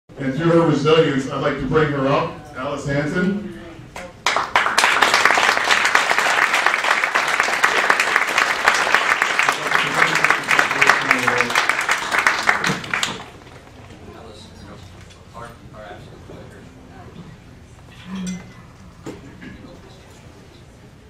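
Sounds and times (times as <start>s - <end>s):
audience applauding: 4.2s - 13.8s.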